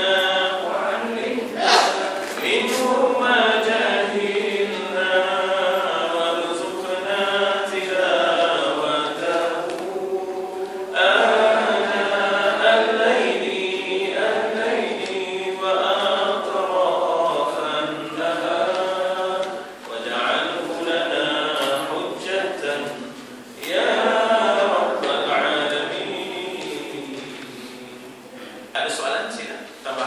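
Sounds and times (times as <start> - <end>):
man chanting a prayer: 12.5 - 23.2.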